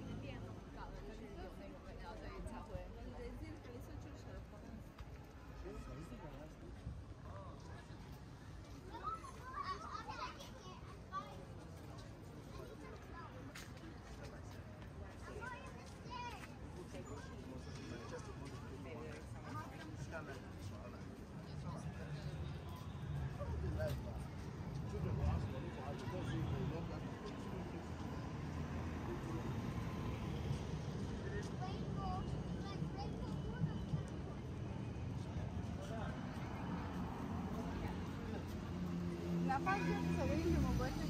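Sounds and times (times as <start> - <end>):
low street rumble: 0.0 - 41.0.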